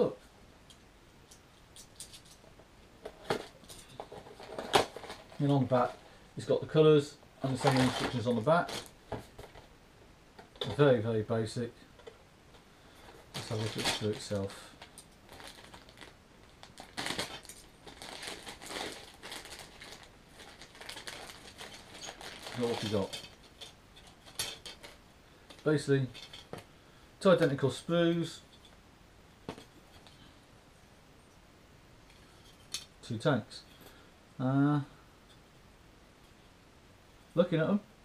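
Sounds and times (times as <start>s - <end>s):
plastic bag crinkling: 7.4s - 9.7s, 13.0s - 26.6s.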